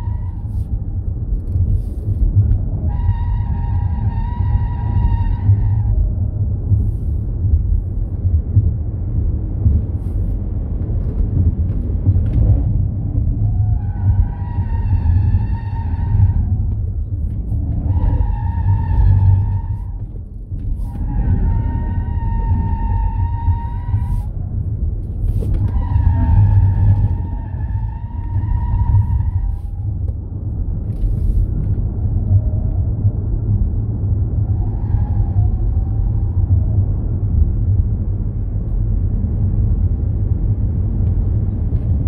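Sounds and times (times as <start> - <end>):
road and wind rumble: 0.0 - 42.0.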